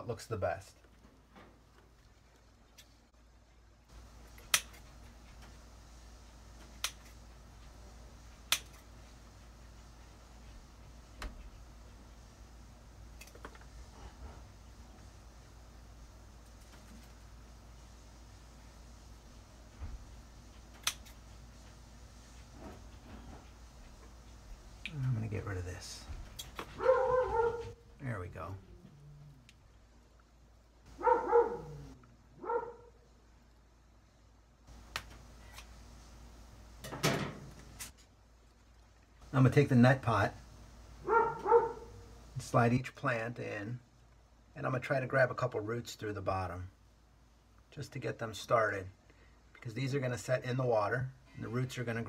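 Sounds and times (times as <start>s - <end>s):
scissors snipping: 20.8s - 21.2s
dog barking: 26.8s - 27.8s, 30.9s - 33.0s, 41.0s - 42.1s.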